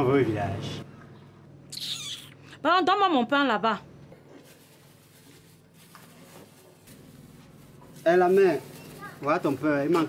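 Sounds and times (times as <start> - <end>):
plastic bag rustling: 4.2 - 10.0.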